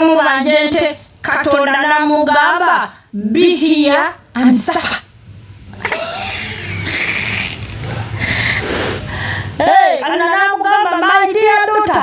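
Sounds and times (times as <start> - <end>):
woman laughing: 5.8 - 7.4.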